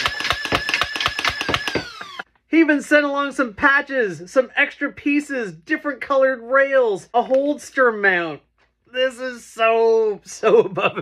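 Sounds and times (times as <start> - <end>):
foam-dart blaster rapid firing: 0.0 - 2.0.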